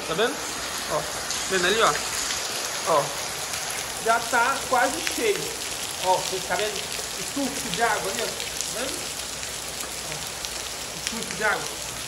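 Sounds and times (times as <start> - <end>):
steady rain: 0.0 - 12.0
water pouring into a rain barrel: 0.0 - 12.0.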